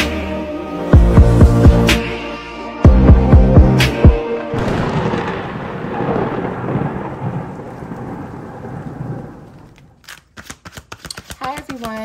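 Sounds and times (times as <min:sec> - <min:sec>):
rain: 0:04.5 - 0:10.0
thunder rumble: 0:04.5 - 0:10.0
cards clicking: 0:10.0 - 0:12.0.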